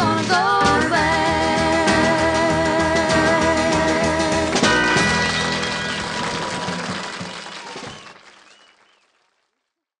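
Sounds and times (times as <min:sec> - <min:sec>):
audience applauding: 0:04.4 - 0:09.8.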